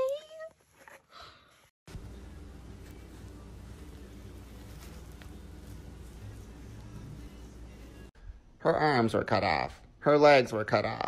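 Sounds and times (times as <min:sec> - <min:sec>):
small rustles: 0:00.0 - 0:07.0
low background hum: 0:01.9 - 0:08.7.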